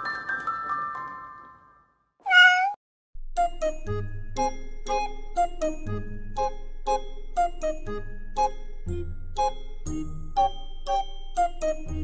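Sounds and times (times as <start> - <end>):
cat meowing: 2.3 - 2.8.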